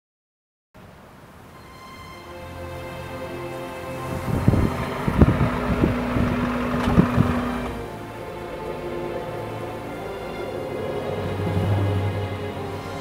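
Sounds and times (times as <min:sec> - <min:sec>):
background music: 0:01.5 - 0:13.0
low thumps: 0:04.1 - 0:07.8
car pulling up and stopping: 0:04.2 - 0:09.4.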